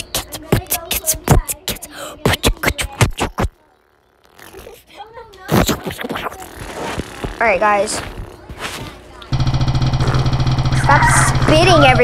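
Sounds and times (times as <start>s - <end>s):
fast ticking of spinning wheel: 9.3s - 12.0s
steady buzzing tone: 9.3s - 12.0s.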